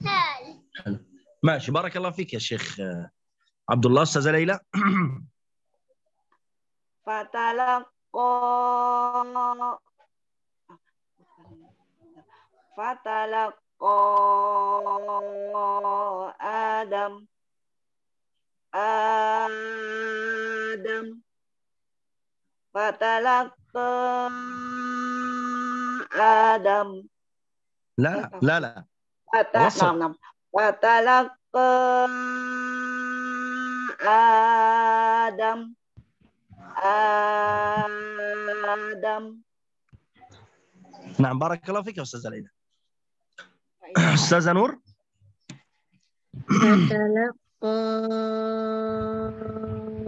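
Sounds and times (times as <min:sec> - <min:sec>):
person chanting a long vowel: 0:18.8 - 0:21.2, 0:23.8 - 0:26.7, 0:31.6 - 0:35.7, 0:36.7 - 0:39.3, 0:47.6 - 0:50.0.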